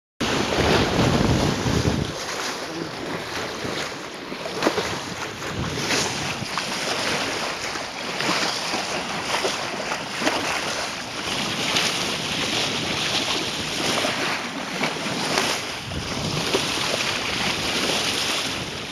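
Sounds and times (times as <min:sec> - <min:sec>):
sea water rushing and splashing: 0:00.2 - 0:18.9
wind buffeting microphone: 0:00.2 - 0:18.9.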